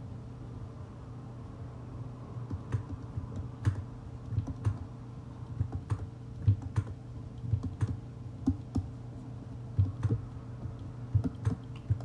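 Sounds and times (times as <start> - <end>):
mouse and keyboard clicks: 2.5 - 4.9, 5.6 - 8.9, 9.8 - 12.0.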